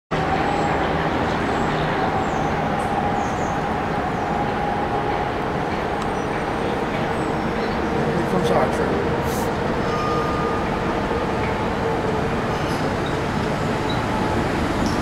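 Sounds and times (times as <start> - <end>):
electric train rumble and hum: 0.1 - 15.0.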